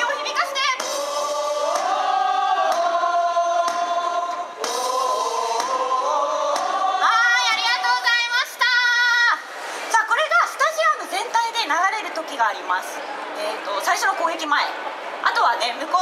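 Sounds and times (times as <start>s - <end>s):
fans singing in chorus: 0.0s - 9.2s
drum strikes: 0.8s - 6.8s.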